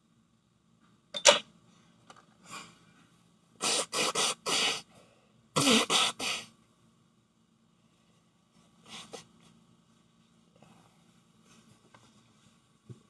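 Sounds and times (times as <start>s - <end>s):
woman blowing nose: 3.6s - 4.9s, 5.6s - 6.5s.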